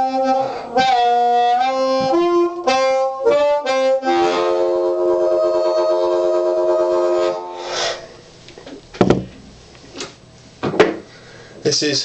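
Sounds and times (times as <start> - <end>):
blues harmonica chord: 0.0 - 8.2
sharp thumps: 8.6 - 11.1.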